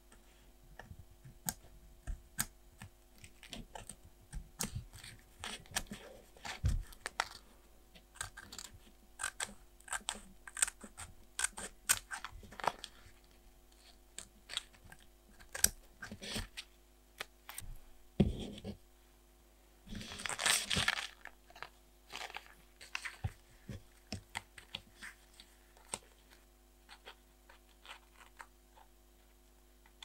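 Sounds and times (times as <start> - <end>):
scissors snipping paper: 8.1 - 12.7
planner pages turning: 20.0 - 23.4.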